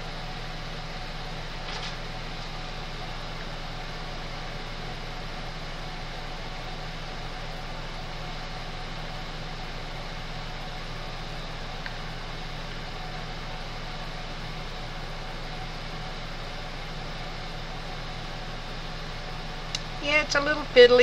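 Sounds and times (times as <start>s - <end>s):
machine hum: 0.0s - 21.0s.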